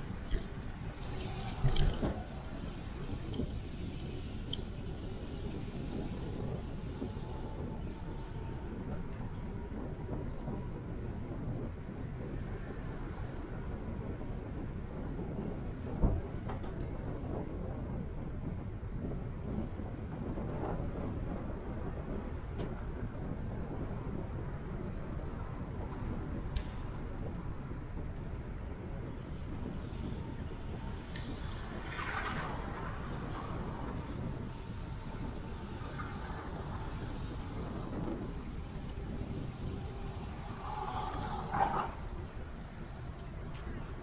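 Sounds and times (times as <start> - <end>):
city traffic rumble: 0.0 - 44.0.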